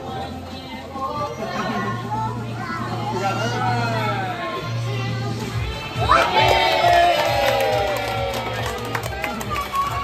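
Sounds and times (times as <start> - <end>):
background music with steady beat: 0.0 - 10.0
children cheering and shouting: 6.0 - 10.0.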